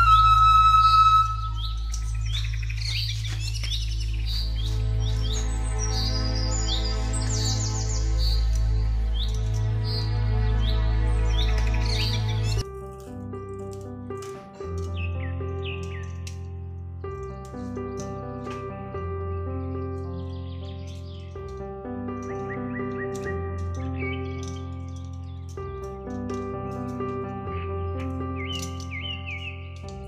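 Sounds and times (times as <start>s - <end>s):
instrumental music with low drone: 0.0s - 30.0s.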